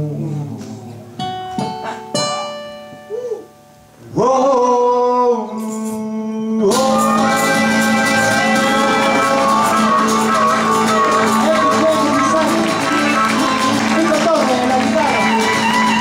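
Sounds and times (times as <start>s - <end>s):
acoustic guitar picking notes: 0.0s - 16.0s
blues harmonica: 6.7s - 16.0s.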